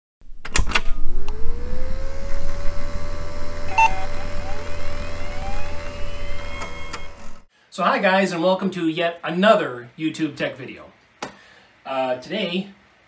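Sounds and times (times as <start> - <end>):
motor whine: 0.8 - 7.5
clicks: 3.6 - 7.4
short beep: 3.7 - 4.6.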